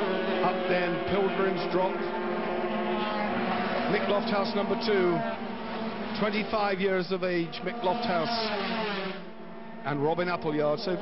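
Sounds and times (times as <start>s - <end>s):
racing motorcycles at high revs: 0.0s - 11.0s.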